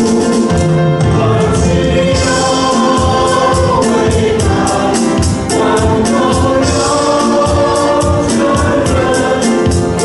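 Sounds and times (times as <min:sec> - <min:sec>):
group singing praise song: 0:00.0 - 0:10.0
keyboard accompaniment: 0:00.0 - 0:10.0.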